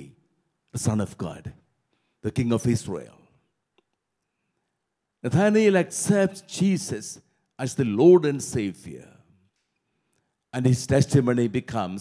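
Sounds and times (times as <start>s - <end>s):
man speaking: 0.0s - 1.6s, 2.2s - 3.3s, 5.2s - 9.2s, 10.5s - 12.0s.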